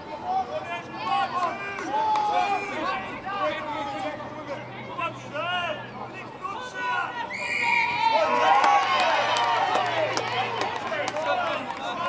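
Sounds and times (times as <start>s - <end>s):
crowd shouting: 0.0s - 4.2s, 4.9s - 12.0s
whistle blast: 7.3s - 8.0s.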